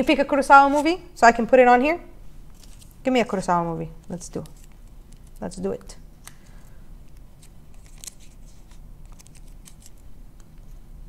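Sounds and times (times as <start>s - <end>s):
paper clicks and rustles: 2.5s - 3.0s, 7.1s - 10.8s.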